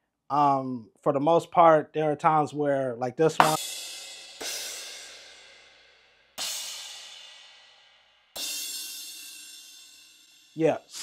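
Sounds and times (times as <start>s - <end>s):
electronic cymbal hits: 3.4s - 11.0s.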